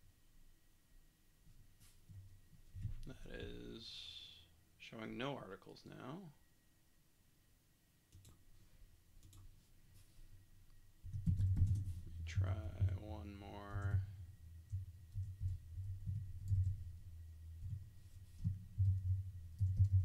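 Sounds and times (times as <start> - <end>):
computer keyboard typing: 8.1 - 8.4, 9.2 - 9.5, 11.0 - 13.1, 14.7 - 16.8, 18.8 - 20.0
low thuds: 11.1 - 20.0.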